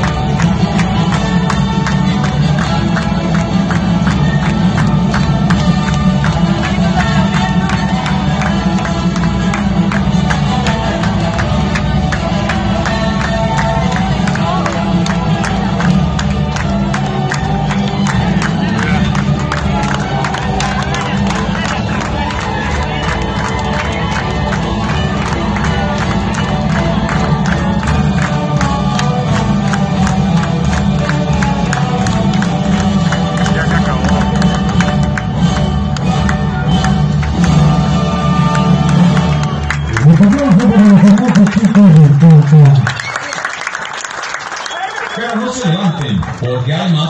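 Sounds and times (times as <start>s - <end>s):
dance music with steady beat: 0.0s - 35.8s
loud voice: 39.9s - 42.9s.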